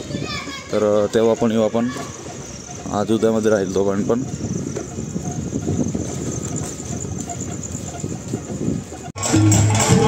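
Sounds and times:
crickets chirping: 0.0 - 9.0.

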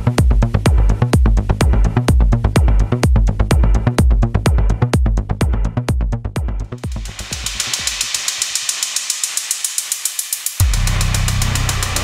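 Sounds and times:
fast hi-hat hits: 0.0 - 12.0
techno kick drum and bass: 0.0 - 12.0.

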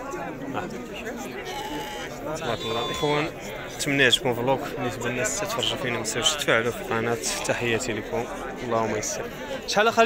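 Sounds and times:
people talking: 0.0 - 10.0
sheep bleating: 1.4 - 3.3.

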